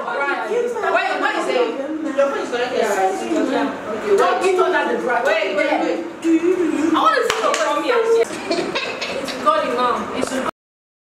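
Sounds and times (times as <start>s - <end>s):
sharp hand claps: 7.3s - 7.8s.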